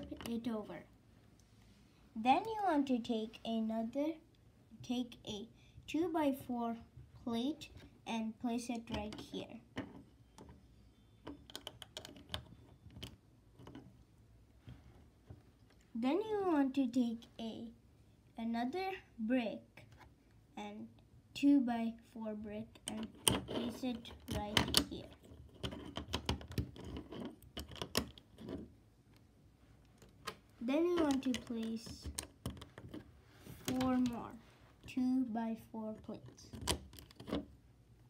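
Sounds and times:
plastic bricks clicking: 11.2 - 13.8.

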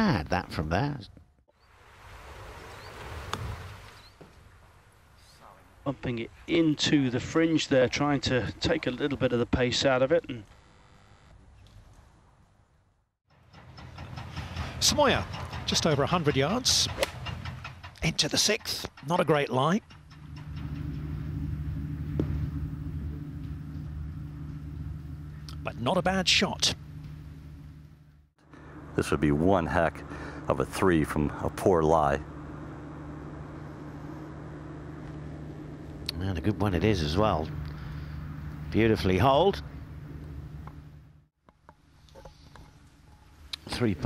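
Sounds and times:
steady outdoor hiss: 0.0 - 44.0
low engine-like hum: 13.4 - 41.3
golf club striking ball: 16.9 - 17.5, 22.0 - 23.5.

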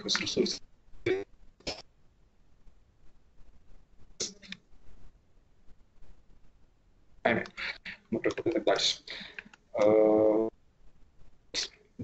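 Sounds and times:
man saying eh: 7.3 - 10.5.

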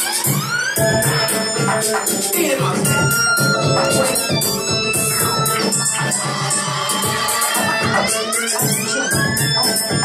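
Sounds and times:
dance music over loudspeakers: 0.0 - 10.0.

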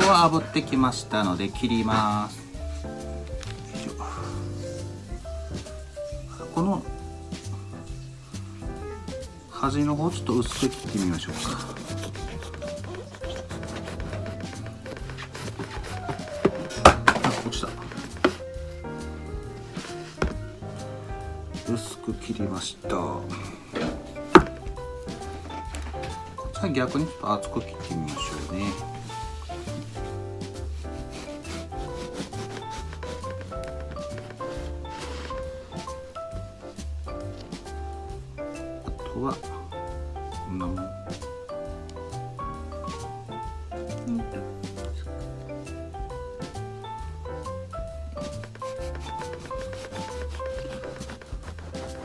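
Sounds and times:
soft background music: 0.0 - 52.0
knife sawing through bread: 10.7 - 16.6, 30.9 - 33.4
knock on plastic cutting board: 16.0 - 17.4, 23.8 - 24.8.

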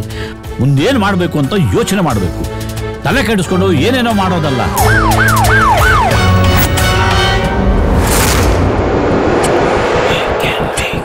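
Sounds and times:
loud rushing rumble: 6.0 - 11.0.

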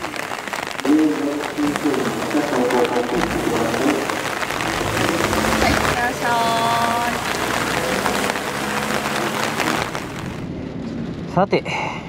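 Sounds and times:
rain on wet asphalt: 0.0 - 10.6
car engine pulling away: 0.2 - 11.3.

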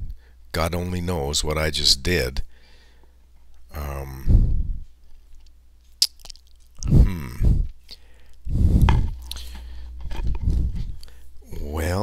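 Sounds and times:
person speaking: 6.8 - 7.7.

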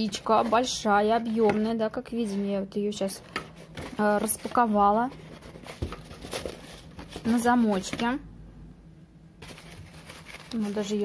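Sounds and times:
fabric bag rustling in hands: 9.4 - 11.0.

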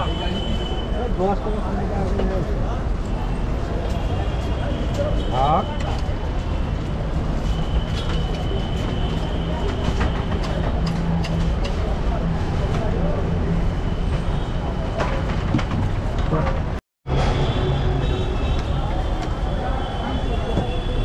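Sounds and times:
traffic engine rumble: 0.0 - 21.0.

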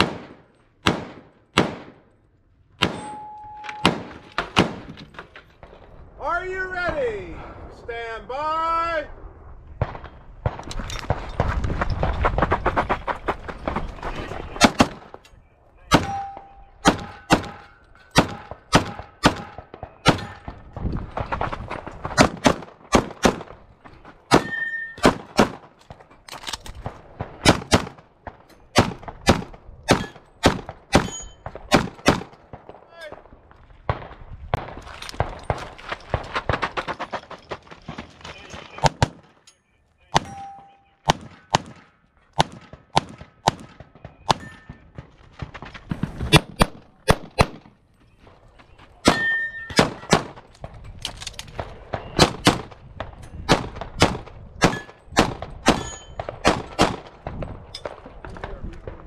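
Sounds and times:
pistol shots: 0.0 - 2.0, 2.8 - 5.0, 15.9 - 20.6, 22.0 - 23.6, 24.3 - 25.8, 26.8 - 32.8, 41.0 - 45.1, 46.1 - 47.8, 49.0 - 50.5, 51.5 - 58.5.

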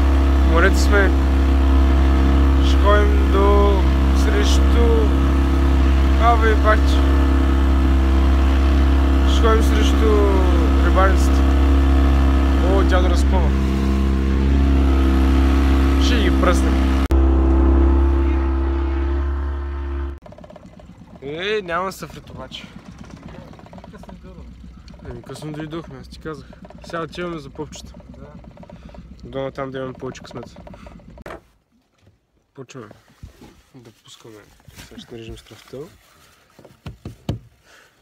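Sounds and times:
motorboat engine running: 0.0 - 31.7
sharp knocks: 36.8 - 37.5.

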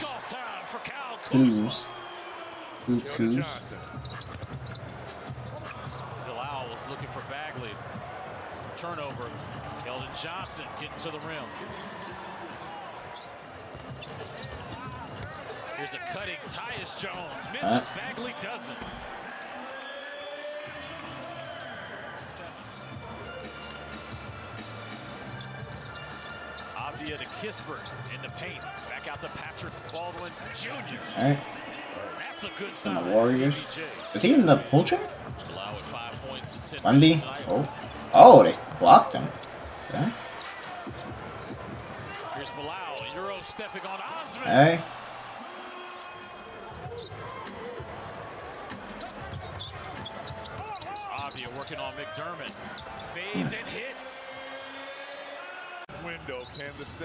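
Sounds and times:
arena crowd noise: 0.0 - 57.0
music: 3.7 - 8.0, 20.6 - 32.6, 35.0 - 38.7, 39.5 - 43.2, 46.7 - 53.4
arena background noise: 17.5 - 18.3, 30.7 - 35.1, 36.8 - 43.3, 44.3 - 50.8, 52.4 - 55.3.

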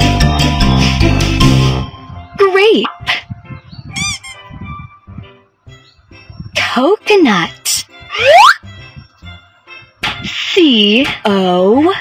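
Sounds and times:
children's background music: 0.0 - 12.0
cartoon squeaky chirps: 3.8 - 4.6, 8.1 - 8.6.

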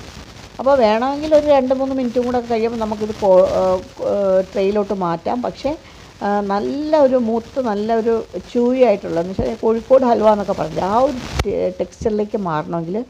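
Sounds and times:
faint sizzling: 0.0 - 13.0
woman talking: 0.6 - 13.0.

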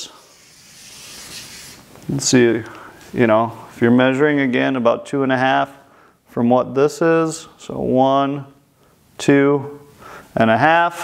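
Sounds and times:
chalk stroke on chalkboard: 0.0 - 1.9.

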